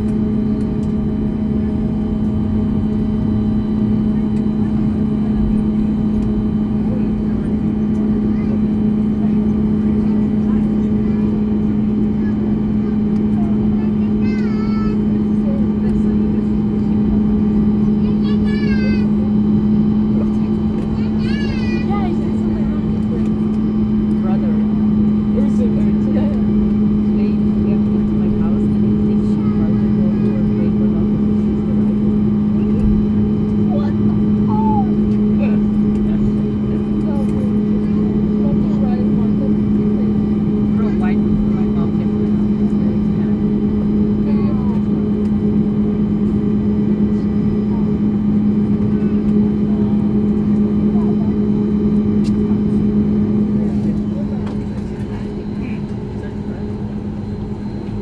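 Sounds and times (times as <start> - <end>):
jet engines rumbling: 0.0 - 58.0.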